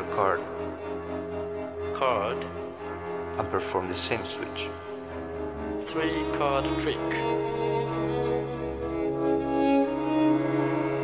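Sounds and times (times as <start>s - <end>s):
string ensemble sustained chords: 0.0s - 11.0s.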